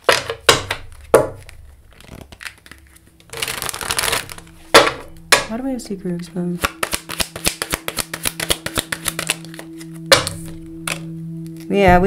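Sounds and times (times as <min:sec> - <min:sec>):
cards shuffling: 0:00.0 - 0:05.5, 0:06.6 - 0:11.7
card slap: 0:06.6 - 0:11.1.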